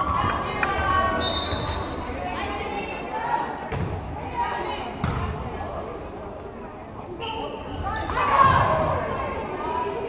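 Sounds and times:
voices: 0:00.0 - 0:10.0.

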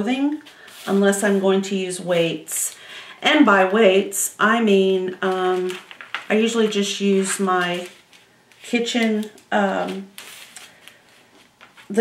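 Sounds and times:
paper rustling: 0:05.2 - 0:12.0.

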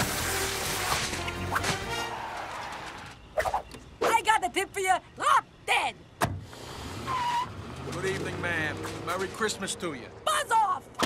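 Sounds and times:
car driving off: 0:06.4 - 0:10.2.

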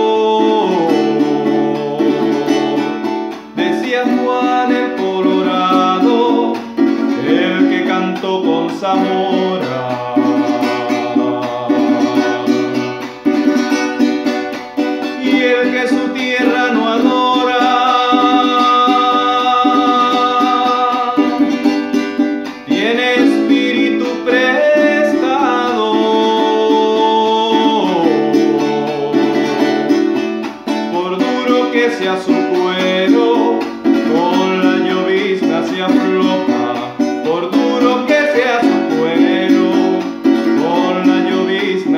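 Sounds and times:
man singing: 0:00.0 - 0:41.9
strummed cuatro: 0:00.0 - 0:41.9.

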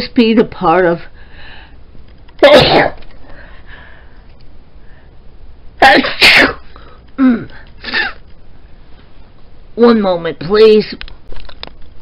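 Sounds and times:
woman sneezing: 0:02.4 - 0:03.0, 0:05.8 - 0:08.2.

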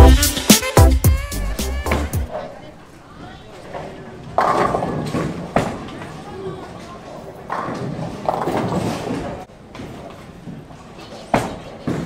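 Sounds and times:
people talking: 0:01.7 - 0:07.3, 0:10.8 - 0:12.0.

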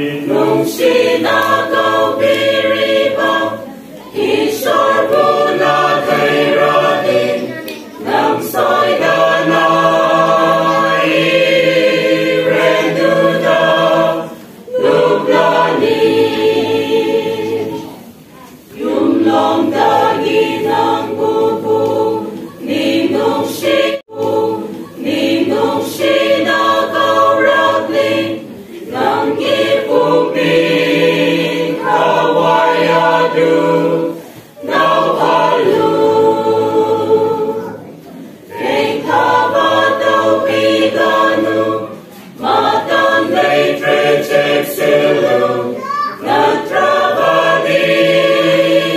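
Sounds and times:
choir singing a hymn: 0:00.0 - 0:48.9.

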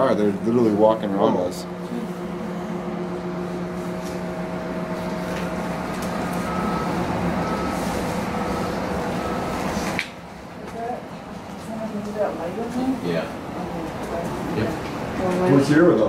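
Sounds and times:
distant motor drone: 0:00.0 - 0:16.0.

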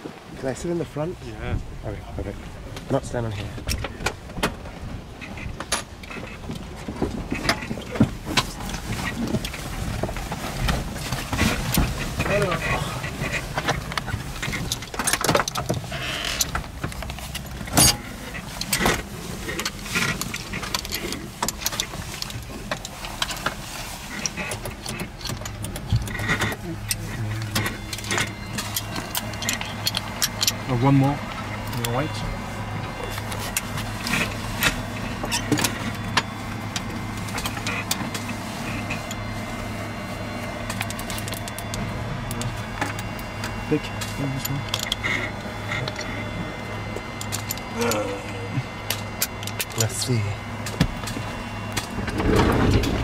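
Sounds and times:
low steady hum: 0:00.0 - 0:53.0
clicks and knocks in cabin: 0:02.7 - 0:30.7, 0:48.8 - 0:53.0
indistinct voices: 0:12.2 - 0:14.8, 0:24.1 - 0:36.8, 0:41.4 - 0:50.8.

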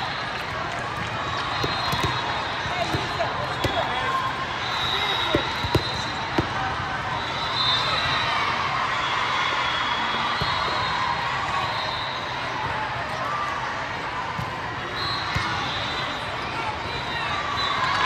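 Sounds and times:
volleyball bouncing on floor: 0:01.0 - 0:04.0, 0:05.3 - 0:06.6.

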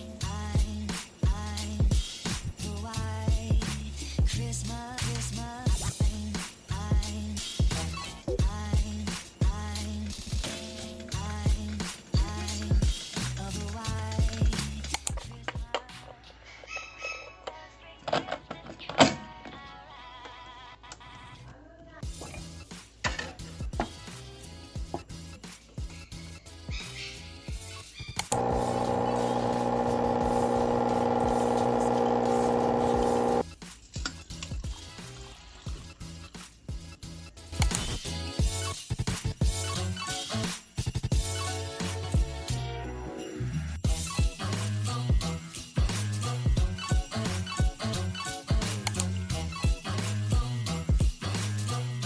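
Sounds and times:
background music: 0:00.0 - 0:16.4, 0:17.9 - 0:29.8, 0:30.5 - 0:52.0
espresso machine pump buzzing: 0:28.3 - 0:33.4
espresso running into cup: 0:28.4 - 0:33.4.

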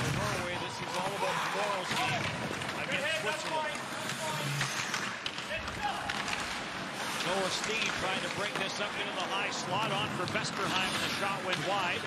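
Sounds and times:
sticks and skates clicking on ice: 0:00.0 - 0:12.0.

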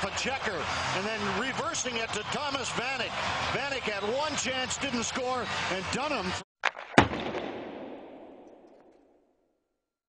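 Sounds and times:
loud bang with echo: 0:07.0 - 0:09.1.

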